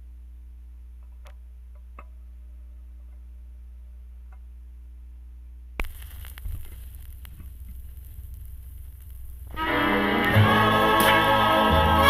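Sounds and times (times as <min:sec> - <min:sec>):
low hum: 0:00.0 - 0:12.0
record playing song with instruments: 0:05.8 - 0:12.0
record stylus crackle: 0:05.8 - 0:12.0.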